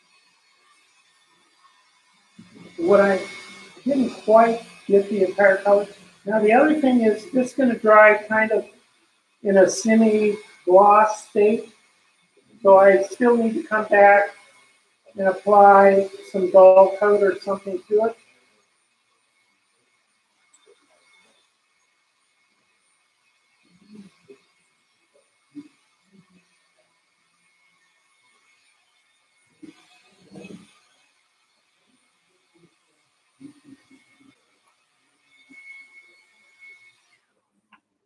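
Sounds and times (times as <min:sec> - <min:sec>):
faint high-pitched whine: 0:27.4 - 0:37.2.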